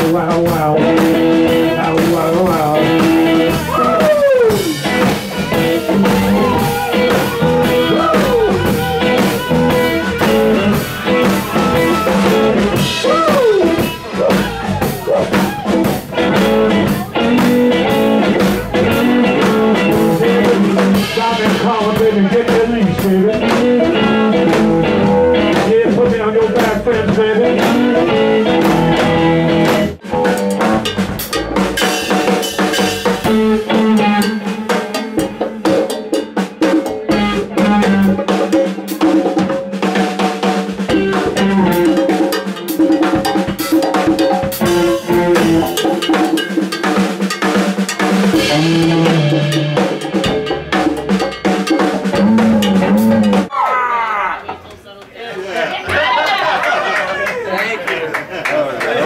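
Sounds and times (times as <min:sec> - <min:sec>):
blues-rock band playing: 0:00.0 - 0:53.6
drums and percussion hitting: 0:00.0 - 0:53.6.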